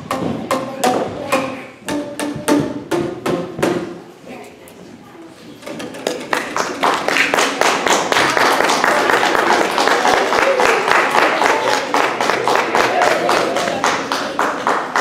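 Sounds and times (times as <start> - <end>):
voices in crowd: 3.8 - 15.0
audience applause: 6.3 - 15.0.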